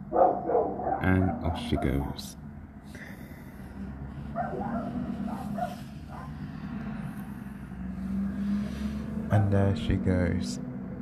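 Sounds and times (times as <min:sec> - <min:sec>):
truck engine rumble: 0:00.0 - 0:11.0
dog barking: 0:00.1 - 0:02.1, 0:04.3 - 0:06.4.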